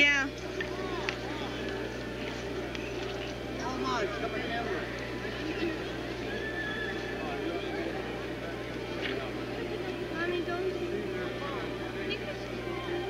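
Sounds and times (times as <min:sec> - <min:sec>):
low electrical hum: 0:00.0 - 0:13.0
people chattering: 0:00.0 - 0:13.0.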